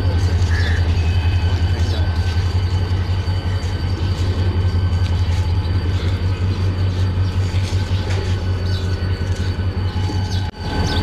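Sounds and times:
diesel locomotive engine drone: 0.0s - 11.0s.

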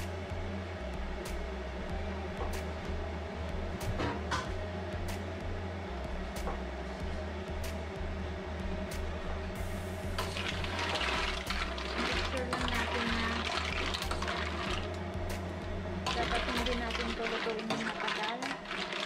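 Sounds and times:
background music with steady beat: 0.0s - 19.0s
mussels sloshing in a stockpot: 10.2s - 14.9s, 16.1s - 19.0s.

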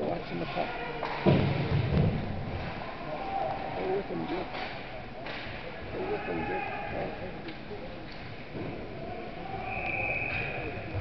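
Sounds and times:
people talking: 0.0s - 0.8s, 3.8s - 4.5s, 5.9s - 7.9s.

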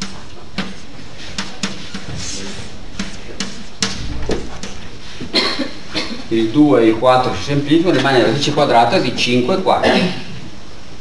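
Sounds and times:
person coughing: 5.2s - 6.3s, 9.8s - 10.4s.

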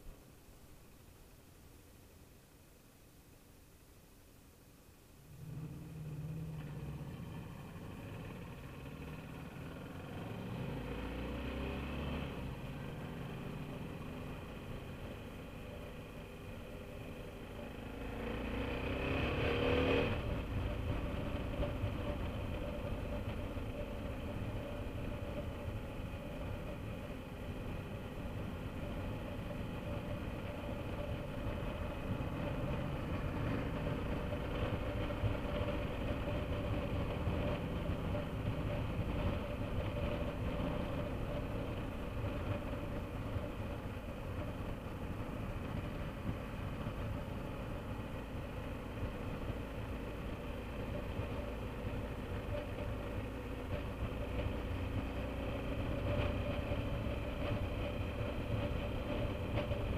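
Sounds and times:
road noise: 0.0s - 2.4s, 4.4s - 59.9s
motorcycle engine accelerating: 5.3s - 59.9s.

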